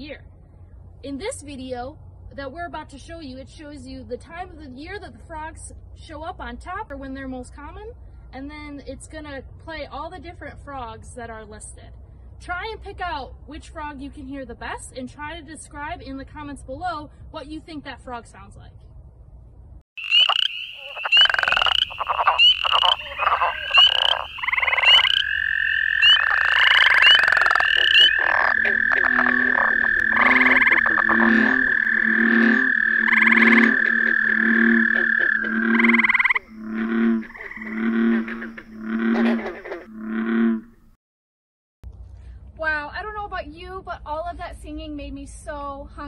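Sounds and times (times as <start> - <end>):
frog trill: 20.0 - 40.8
frogs chirping: 20.0 - 40.8
deep pulsed frog calls: 20.0 - 40.9.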